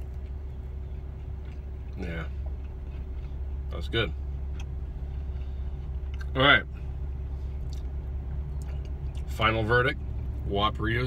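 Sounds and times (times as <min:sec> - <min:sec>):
faint constant tone: 0:00.0 - 0:11.0
vehicle idling hum: 0:00.0 - 0:11.0.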